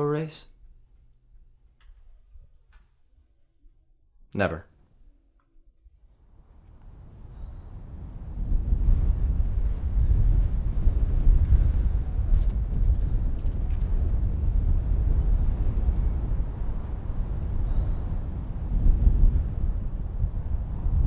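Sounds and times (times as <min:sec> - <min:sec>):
wind buffeting microphone: 0:06.2 - 0:21.0.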